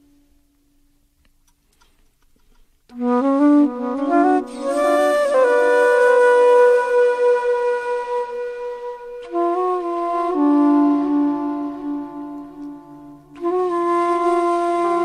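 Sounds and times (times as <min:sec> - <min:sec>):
flute playing long notes: 0:02.9 - 0:15.0.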